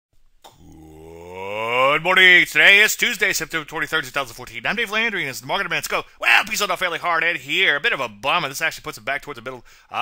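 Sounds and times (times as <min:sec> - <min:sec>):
rising voice-like tone: 0:00.5 - 0:02.0
person speaking: 0:00.5 - 0:10.0.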